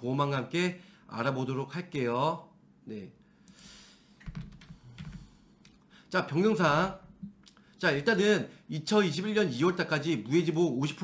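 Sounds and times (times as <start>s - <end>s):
computer keyboard clicks: 4.2s - 5.2s.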